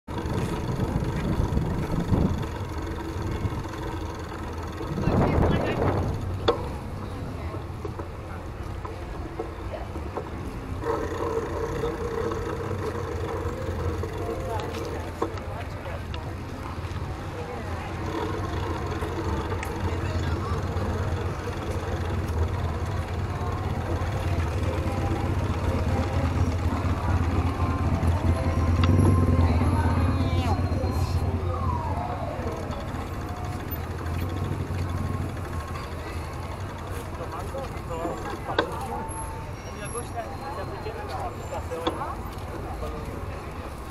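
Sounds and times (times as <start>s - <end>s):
low rumble of traffic: 0.0s - 43.9s
chatter of passers-by: 0.1s - 43.9s.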